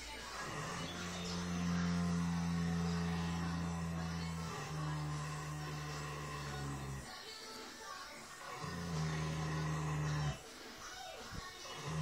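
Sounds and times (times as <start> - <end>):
horse snoring: 0.2 - 7.2, 8.4 - 10.4, 11.3 - 12.0.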